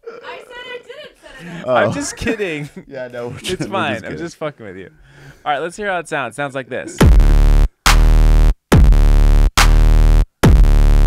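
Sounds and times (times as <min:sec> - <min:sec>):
buzzy dubstep bass stabs: 0:07.0 - 0:11.0.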